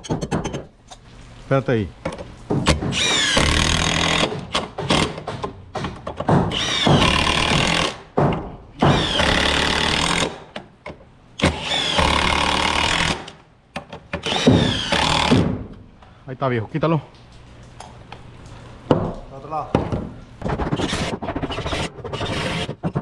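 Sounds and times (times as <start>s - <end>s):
impact wrench hammering bolts: 2.1s - 15.7s.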